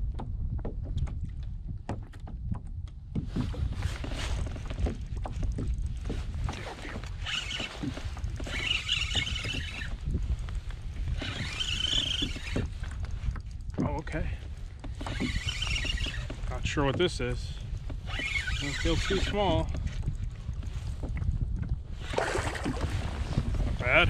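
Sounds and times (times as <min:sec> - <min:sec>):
wind buffeting microphone: 0:00.0 - 0:24.0
fishing reel cranking: 0:07.0 - 0:10.1, 0:11.1 - 0:12.7, 0:15.0 - 0:16.4, 0:18.0 - 0:19.6.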